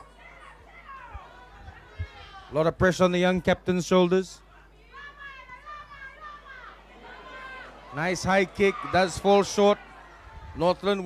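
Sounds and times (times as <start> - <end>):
spectators shouting and calling: 0.0 - 11.0.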